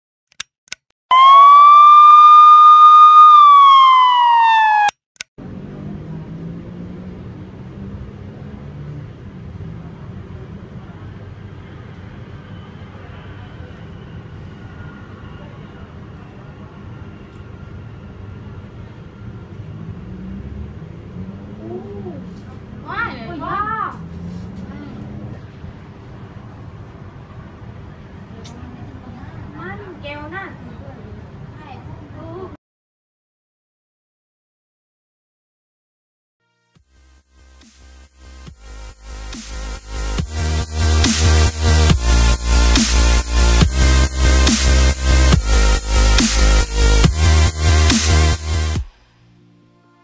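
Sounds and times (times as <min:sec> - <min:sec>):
sharp clicks: 0:00.3 - 0:00.9
loud electronic tone: 0:01.1 - 0:04.9.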